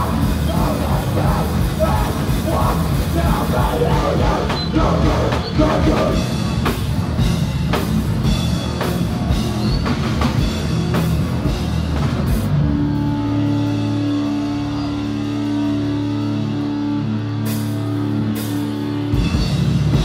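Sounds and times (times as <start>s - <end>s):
heavy rock band playing: 0.0s - 20.0s.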